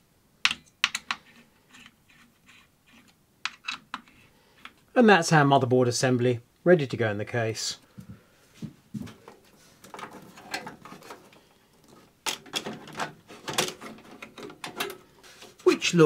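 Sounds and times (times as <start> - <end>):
faint handling noises: 7.8 - 15.8
clicks knocks and metallic rattles: 9.1 - 15.0.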